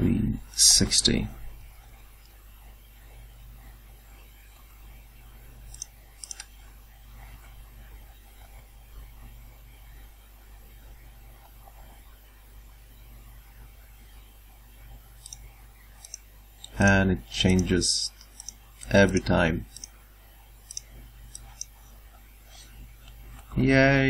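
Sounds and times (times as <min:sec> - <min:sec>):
steady low hum: 0:00.0 - 0:24.0
computer keyboard clicks: 0:05.7 - 0:06.5.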